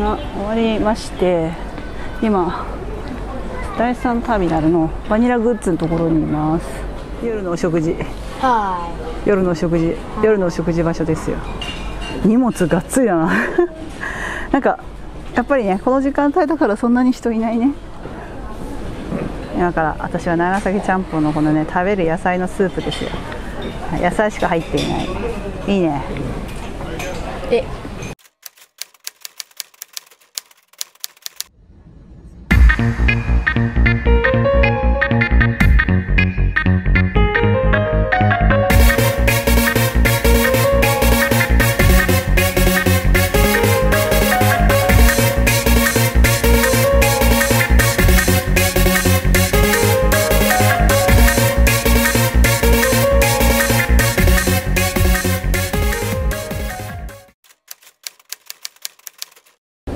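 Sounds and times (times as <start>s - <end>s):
typewriter key clicks: 28.2s - 31.5s, 57.5s - 59.6s
electronic music: 32.5s - 57.3s.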